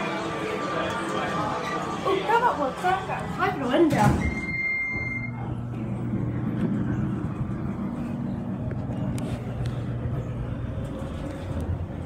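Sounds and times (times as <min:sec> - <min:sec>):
elevator drive humming: 0:00.0 - 0:12.0.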